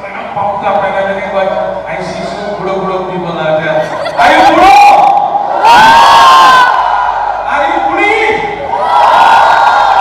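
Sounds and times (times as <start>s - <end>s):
audience cheering and shouting: 4.0s - 10.0s.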